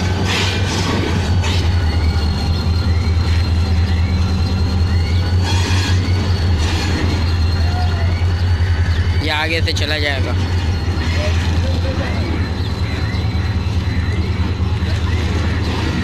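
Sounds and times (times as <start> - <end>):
diesel locomotive engine throbbing: 0.0 - 16.0
faint high whine: 1.1 - 16.0.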